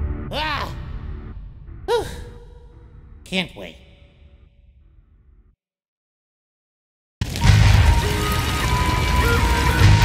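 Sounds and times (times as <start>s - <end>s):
person sighing: 1.9s - 2.6s.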